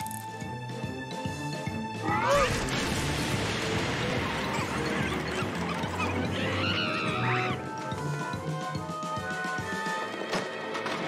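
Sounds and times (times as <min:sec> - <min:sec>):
background music: 0:00.0 - 0:11.0
cartoon bear shrieking: 0:02.0 - 0:02.7, 0:05.0 - 0:07.6.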